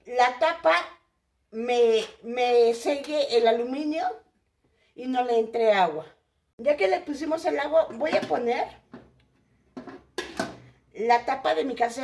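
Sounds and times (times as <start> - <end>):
pot lid knocking on pot: 9.8 - 10.7.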